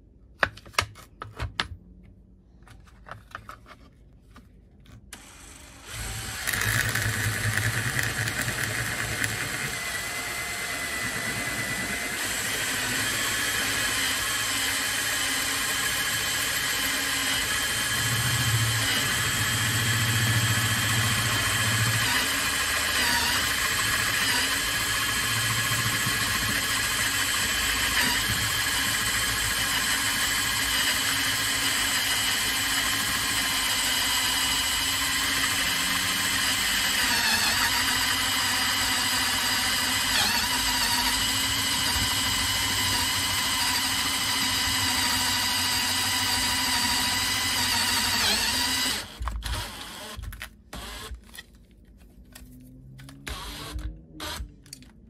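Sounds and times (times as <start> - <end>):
power drill whining: 5.1 - 51.5, 53.2 - 54.9.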